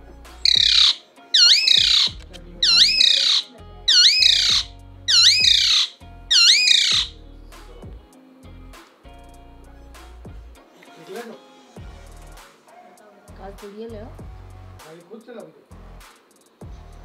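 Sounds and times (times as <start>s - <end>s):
parakeet squawking: 0.4s - 7.2s.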